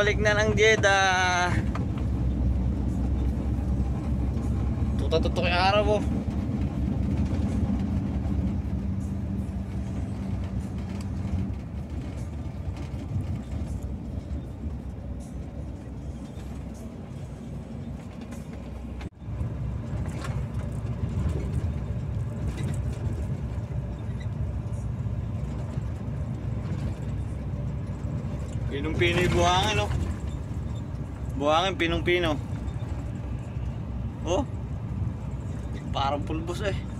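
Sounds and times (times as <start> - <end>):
road noise: 0.0 - 36.9
truck engine drone: 0.0 - 36.9.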